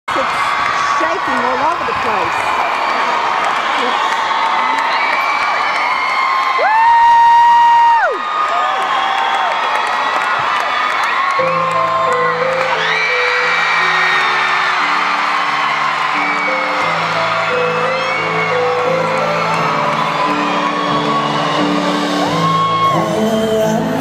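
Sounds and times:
crowd screaming and cheering: 0.0 - 24.0
held keyboard chords: 11.4 - 24.0
loud high scream: 12.3 - 23.2.

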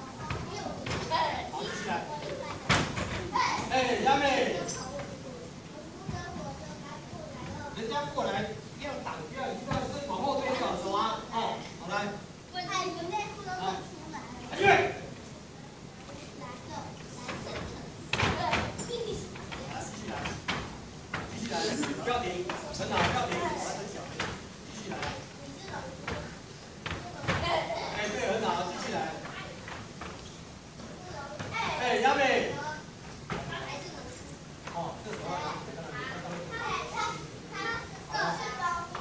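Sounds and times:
children chattering and calling out: 0.0 - 39.0.

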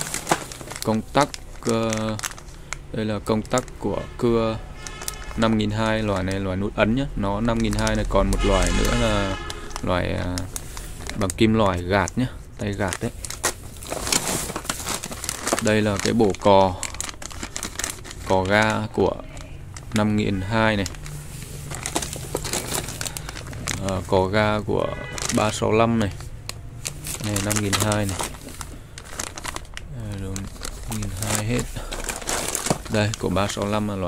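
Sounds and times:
plastic packaging crinkling: 0.0 - 34.0.

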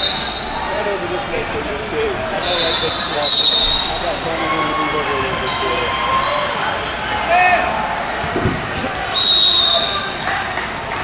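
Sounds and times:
voices shouting: 2.3 - 7.9
referee's whistle: 2.4 - 6.2, 9.1 - 10.2.

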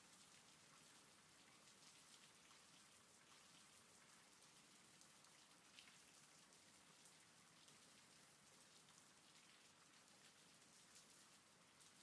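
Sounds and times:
faint steady rain: 0.0 - 12.0.

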